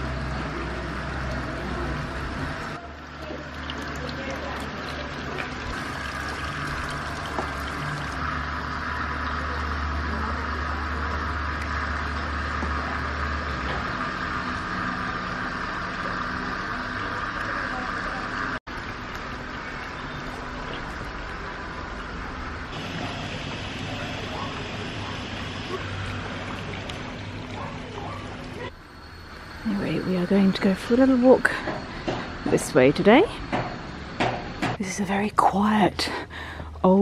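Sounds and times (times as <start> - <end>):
street ambience: 0.0 - 37.0
vehicle engine rumble: 0.0 - 37.0.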